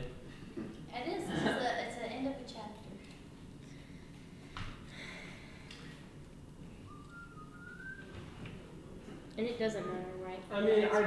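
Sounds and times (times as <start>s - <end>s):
person whistling softly: 6.8s - 8.2s.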